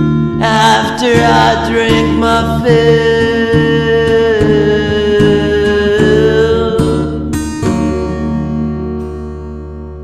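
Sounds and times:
acoustic guitar strums: 0:00.0 - 0:10.0.

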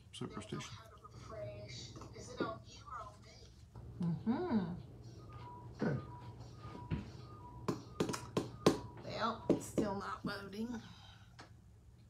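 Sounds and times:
sharp finger taps on device: 0:07.7 - 0:08.9.

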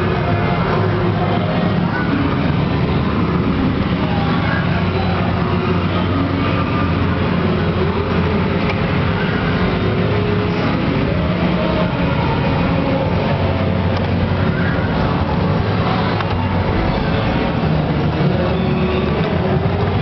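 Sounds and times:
loud din with low hum: 0:00.0 - 0:20.0
voices: 0:00.0 - 0:20.0.

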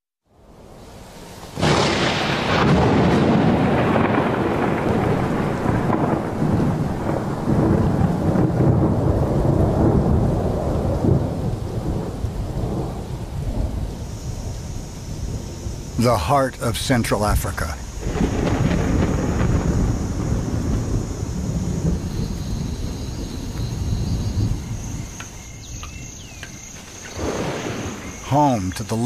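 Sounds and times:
thunder clap and rumble: 0:01.6 - 0:29.0.

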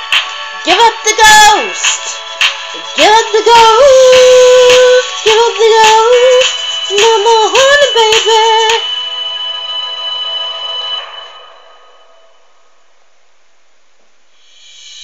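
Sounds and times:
pop backing track: 0:00.0 - 0:10.6
woman singing: 0:00.6 - 0:02.2, 0:02.8 - 0:08.9
faint steady hiss: 0:11.4 - 0:15.0.

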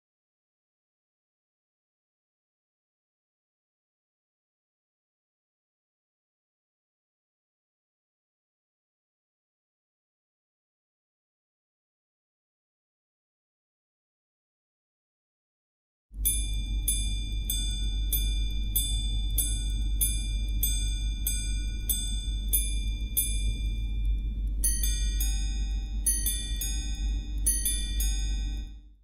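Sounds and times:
ding-dong gong pairs: 0:16.2 - 0:28.9
steady low hum: 0:16.2 - 0:29.0.

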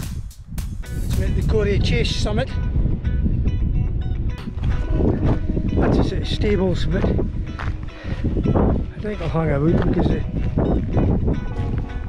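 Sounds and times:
soft background music: 0:00.0 - 0:12.0
wind buffeting microphone: 0:00.0 - 0:12.0.

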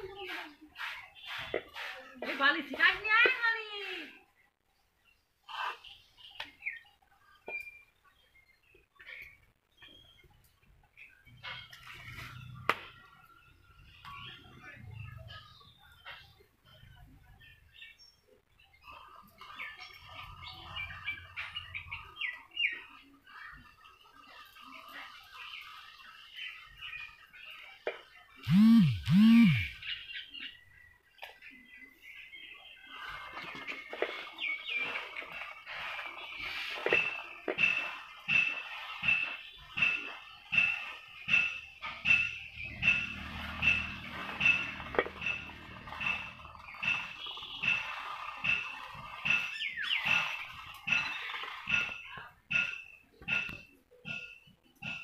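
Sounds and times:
birds chirping: 0:00.0 - 0:55.0
loud rising and falling calls: 0:28.5 - 0:29.9.

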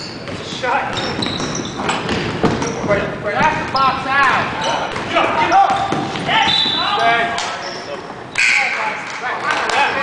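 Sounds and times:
basketball bouncing on floor: 0:00.2 - 0:02.8.

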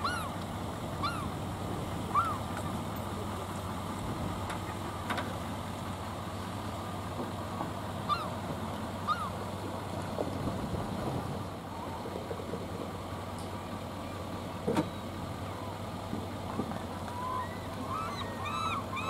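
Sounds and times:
pickup truck engine running: 0:00.0 - 0:19.0
short bird calls: 0:17.2 - 0:19.0.

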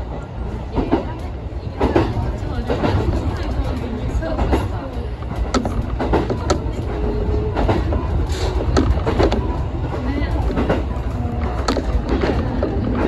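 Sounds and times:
train wheels rumbling: 0:00.0 - 0:13.0.

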